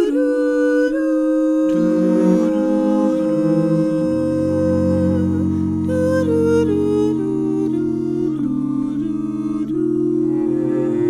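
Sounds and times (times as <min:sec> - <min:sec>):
vocal group humming chords: 0:01.3 - 0:11.0.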